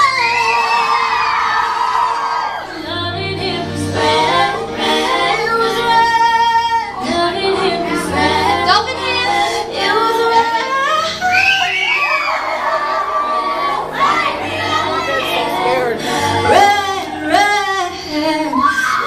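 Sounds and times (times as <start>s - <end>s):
female vocal group singing: 0.0s - 19.0s.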